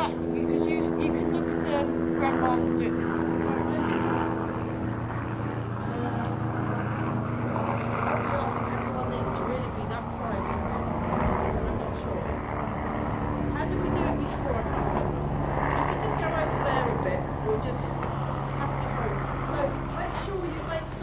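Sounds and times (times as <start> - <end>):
faint voices: 0.0 - 21.0
steady engine drone: 0.0 - 21.0.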